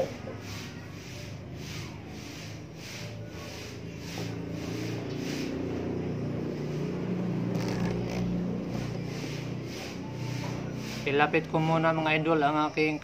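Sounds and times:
vehicle engine humming: 0.0 - 13.0.

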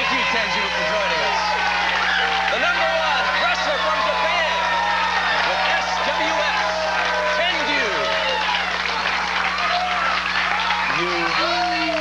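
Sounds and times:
audience cheering and shouting: 0.0 - 12.0
steady low hum: 0.0 - 12.0.

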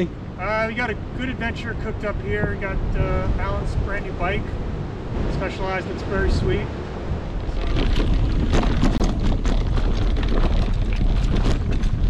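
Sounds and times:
wind buffeting microphone: 0.0 - 12.0
deep rumble: 1.0 - 12.0.

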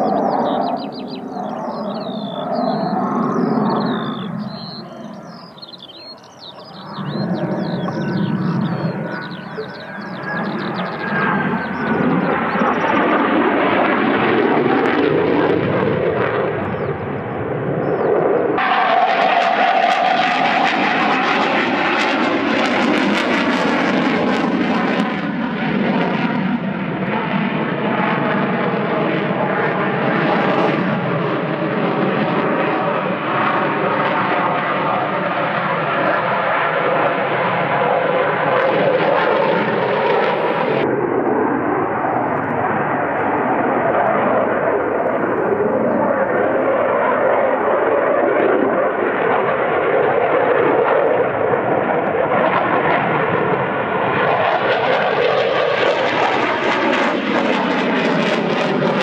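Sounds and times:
fighter jet on afterburners: 0.0 - 25.2
jet engines passing: 0.0 - 59.0.

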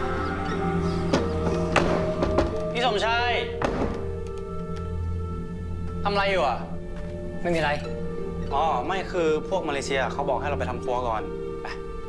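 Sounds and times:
eerie background music: 0.0 - 12.0.

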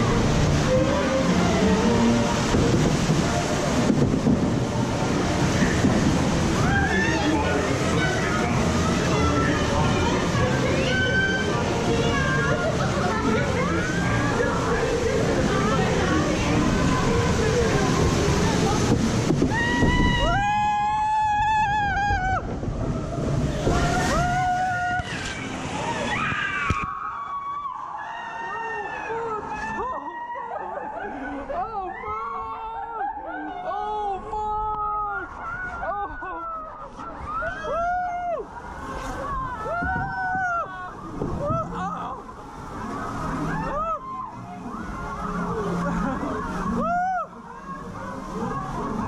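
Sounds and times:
steady rushing noise: 0.0 - 26.9
voices: 0.0 - 49.0.

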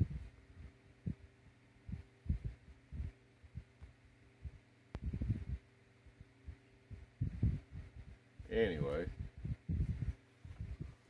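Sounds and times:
faint steady hum: 0.0 - 11.0
low thumps and lip pops: 5.0 - 5.6, 6.9 - 7.9, 9.1 - 10.9.

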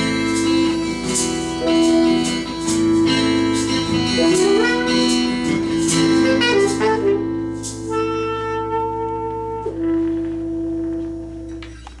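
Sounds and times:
tenor saxophone playing: 0.0 - 11.5.

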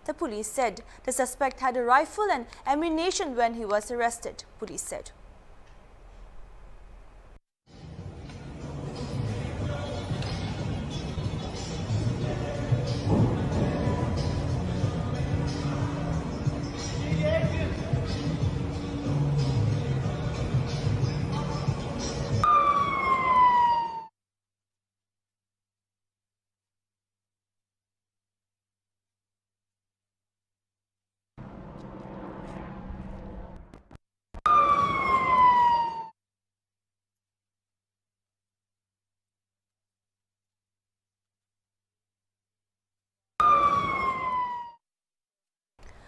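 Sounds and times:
emergency vehicle siren: 22.4 - 24.1, 34.5 - 36.2, 43.4 - 44.8.

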